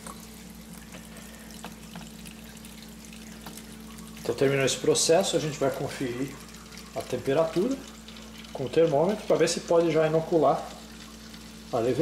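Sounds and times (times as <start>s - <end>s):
liquid trickling into bucket: 0.0s - 12.0s.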